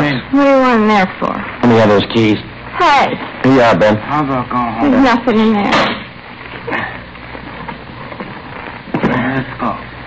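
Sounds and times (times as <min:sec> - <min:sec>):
crackling hiss of old recording: 0:00.0 - 0:10.0.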